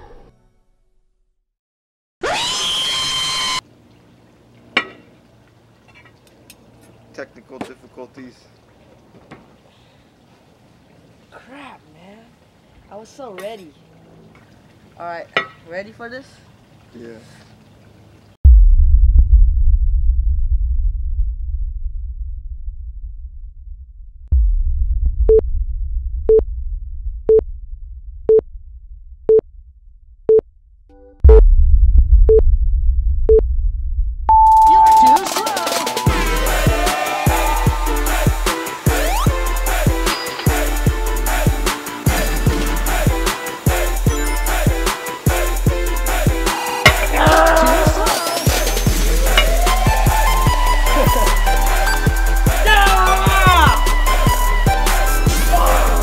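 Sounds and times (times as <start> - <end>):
loud tone sweeping up: 2.2 - 3.6
low rumble: 18.4 - 34.5.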